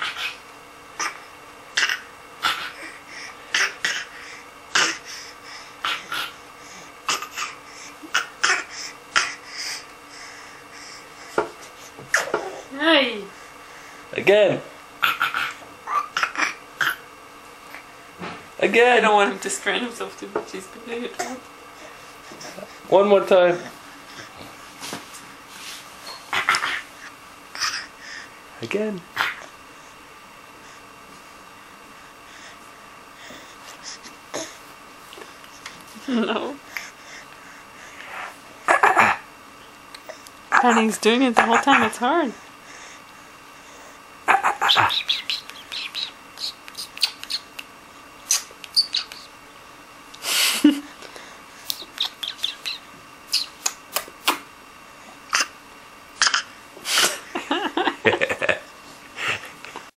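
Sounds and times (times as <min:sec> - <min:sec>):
baby fake coughing: 0:01.8 - 0:02.8, 0:03.5 - 0:04.1, 0:04.7 - 0:05.0, 0:07.1 - 0:09.4, 0:15.0 - 0:17.0, 0:55.3 - 0:55.5, 0:56.2 - 0:56.5.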